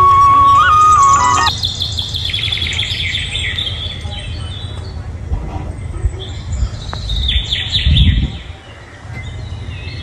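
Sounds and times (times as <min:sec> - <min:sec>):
small birds chirping: 0:00.0 - 0:05.0.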